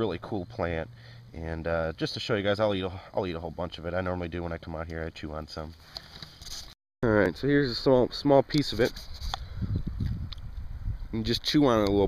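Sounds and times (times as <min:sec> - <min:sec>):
low rumble on microphone: 0:09.4 - 0:11.4.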